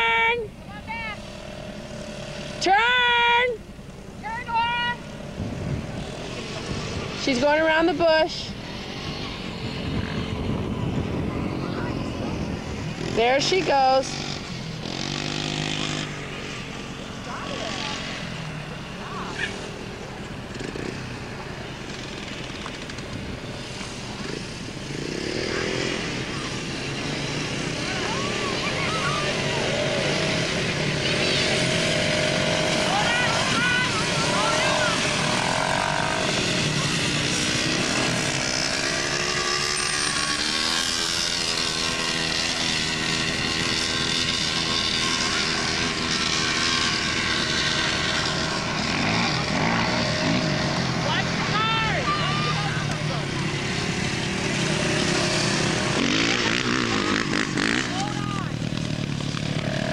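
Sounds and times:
quad bike engine revving: 0.0 - 3.7, 4.3 - 59.9
voices calling out: 0.0 - 59.9.

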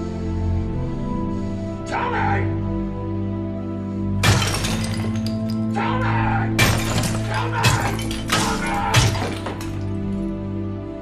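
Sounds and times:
sink crashing and shattering: 4.2 - 5.6, 6.6 - 10.2.

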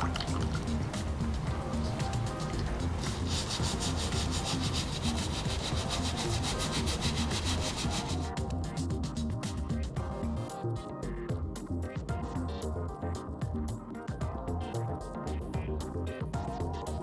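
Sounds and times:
background music: 0.0 - 17.0
brush scrubbing sneaker sole: 1.8 - 8.4.

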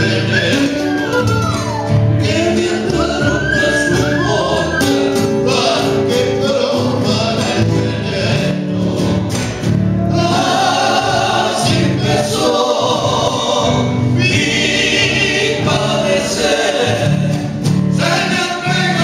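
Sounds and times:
men singing in harmony: 0.0 - 1.2, 2.0 - 19.0
strummed acoustic guitars: 0.0 - 19.0.

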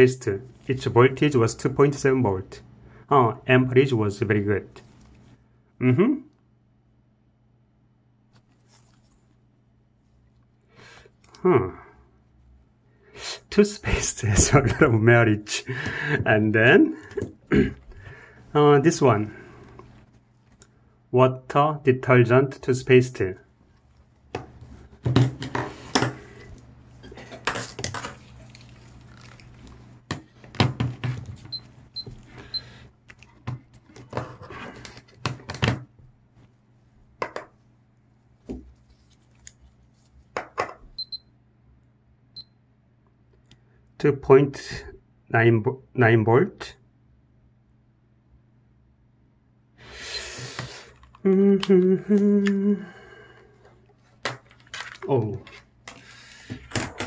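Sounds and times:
rustling: 8.3 - 10.3
knocks and clicks of handled objects: 37.2 - 37.6.

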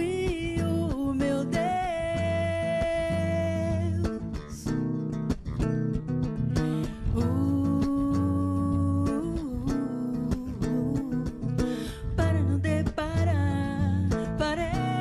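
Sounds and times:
electric bass guitar: 0.0 - 15.0
woman singing long notes: 7.1 - 15.0.

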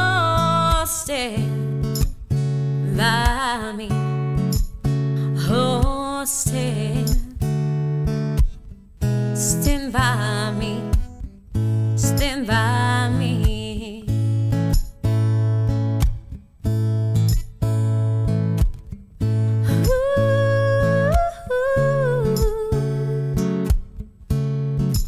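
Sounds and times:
woman singing: 0.0 - 1.9, 2.8 - 4.6, 5.2 - 7.5, 9.3 - 11.1, 11.8 - 14.4, 19.5 - 23.7
strummed acoustic guitar: 0.0 - 25.0.

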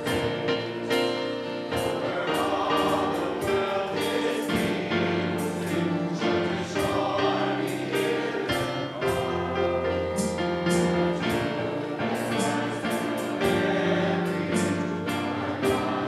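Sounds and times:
choir singing a hymn: 0.0 - 16.0
piano accompaniment: 0.0 - 16.0.

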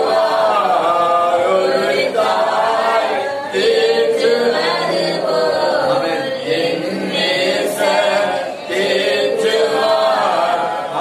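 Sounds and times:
group singing unaccompanied: 0.0 - 11.0.

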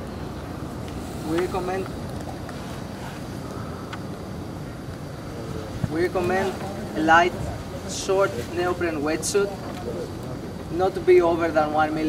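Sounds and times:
wind rumble on microphone: 0.0 - 11.2.

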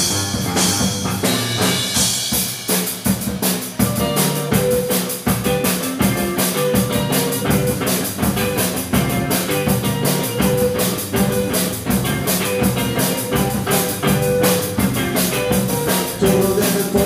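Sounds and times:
drum hits: 0.0 - 17.0
rock band playing: 0.0 - 17.0.

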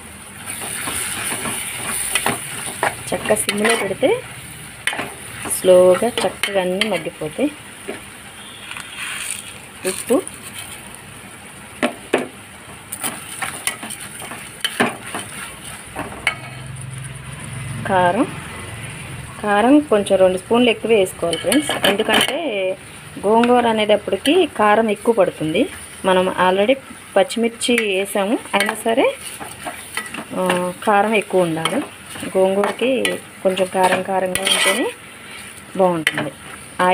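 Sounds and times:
vegetables sizzling in oil: 0.0 - 36.9
spoon scraping metal pot: 21.2 - 22.4, 31.4 - 35.0.

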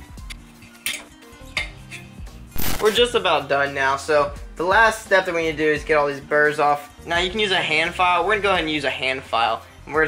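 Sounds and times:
background music: 0.0 - 10.0
sharp metallic clicks: 2.6 - 3.0.

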